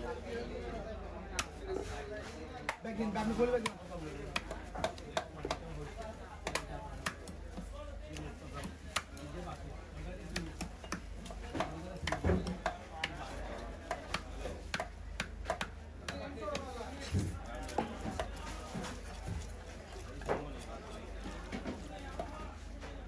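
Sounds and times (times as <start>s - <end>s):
knife chopping fish on wood: 3.6s - 5.7s, 6.4s - 9.2s, 10.2s - 13.2s, 13.8s - 19.5s.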